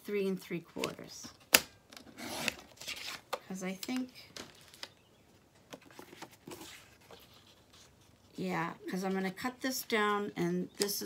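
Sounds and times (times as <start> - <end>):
paper sliding rustles: 5.8 - 8.2.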